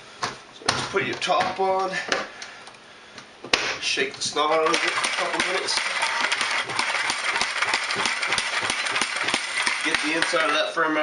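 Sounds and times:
bucket knocking and rattling: 4.6s - 10.7s.

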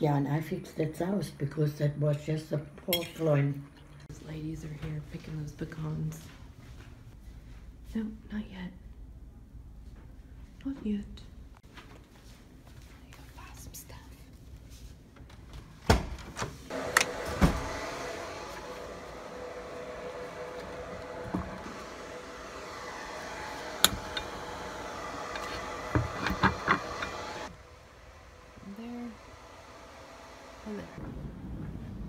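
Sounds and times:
steady machine hum: 16.7s - 32.0s.

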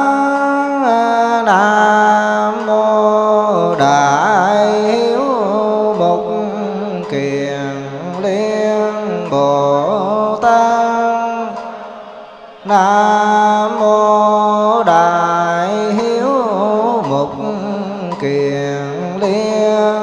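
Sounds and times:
man chanting over a microphone: 0.0s - 20.0s.

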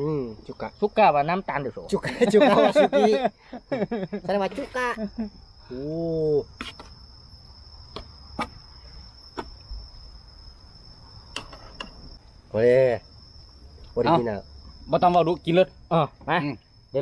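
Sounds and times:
crickets trilling: 0.0s - 17.0s.

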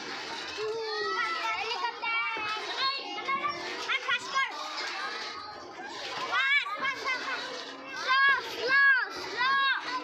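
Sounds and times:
children's playground noise: 0.0s - 10.0s.

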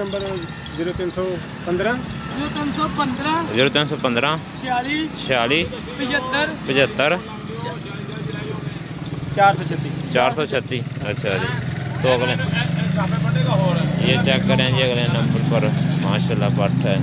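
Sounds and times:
men talking: 0.0s - 17.0s
vehicle engine idling: 0.0s - 17.0s.

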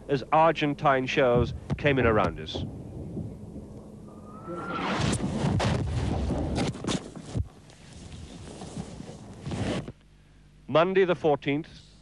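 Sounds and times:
rumble: 1.3s - 10.0s.

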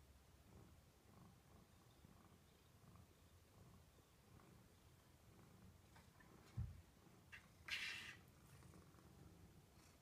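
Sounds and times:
cat purring: 0.2s - 10.0s.

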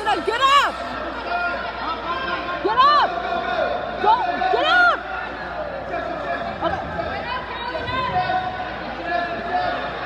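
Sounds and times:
people yelling encouragement: 0.0s - 6.4s.

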